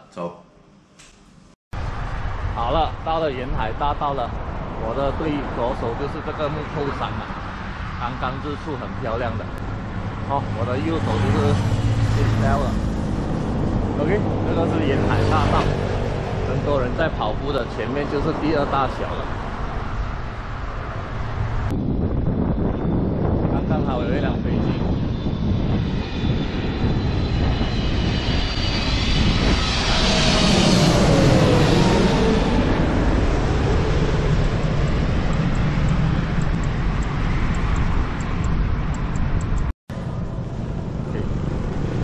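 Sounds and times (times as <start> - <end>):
jet aircraft passing overhead: 1.8 - 42.0
wind rumble: 1.8 - 42.0.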